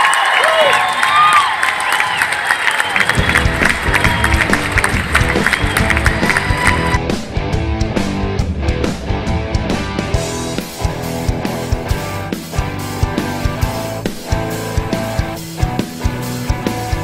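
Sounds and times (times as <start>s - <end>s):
club crowd cheering and whooping: 0.0s - 7.0s
heavy rock music: 3.1s - 17.0s.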